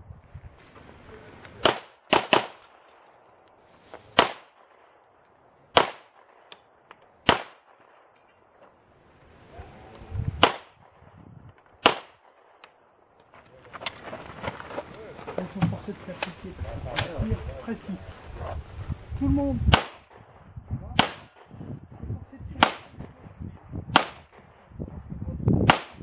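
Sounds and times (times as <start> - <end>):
pistol shots: 1.6 - 2.8, 4.2 - 5.0, 5.7 - 8.2, 10.4 - 10.9, 11.5 - 12.8, 19.7 - 20.3, 20.9 - 21.6, 22.6 - 23.1, 23.9 - 24.6, 25.6 - 26.0.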